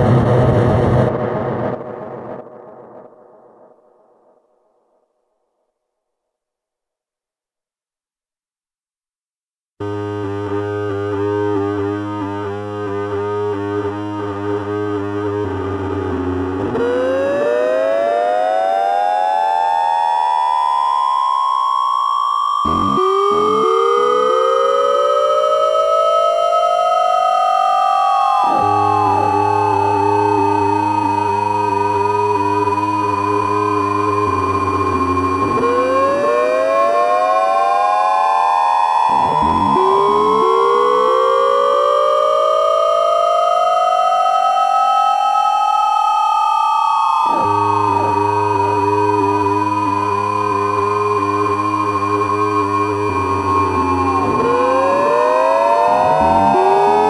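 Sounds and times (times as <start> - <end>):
low steady drone: 9.8 - 18.0, 28.3 - 36.9, 47.2 - 57.0
gliding electronic oscillator tones: 9.8 - 57.0.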